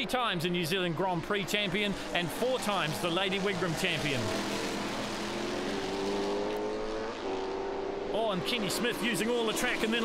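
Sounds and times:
racing car engine at full throttle: 0.0s - 10.0s.

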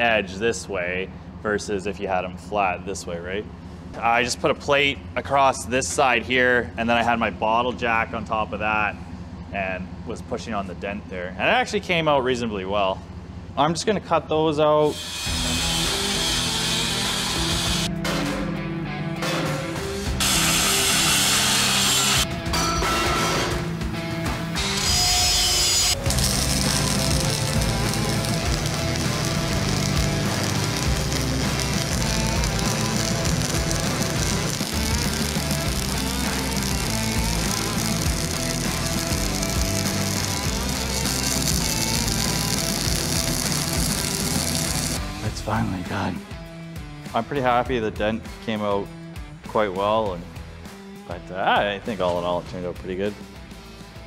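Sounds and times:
angle grinder on steel: 14.9s - 17.9s, 20.2s - 22.3s, 24.6s - 45.0s
background music: 15.0s - 54.0s.

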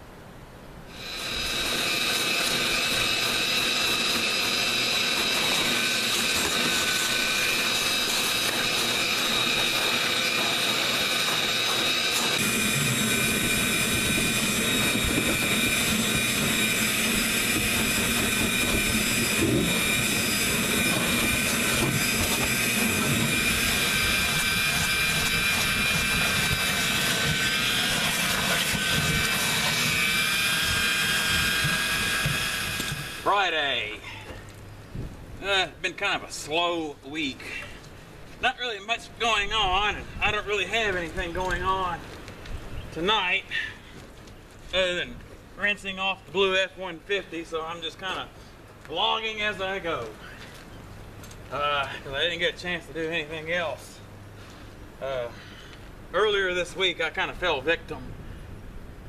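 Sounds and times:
vacuum cleaner motor whining: 0.9s - 33.4s.

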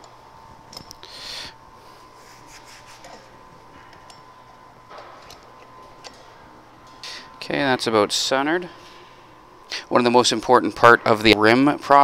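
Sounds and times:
thin steady high hum: 0.0s - 12.0s.

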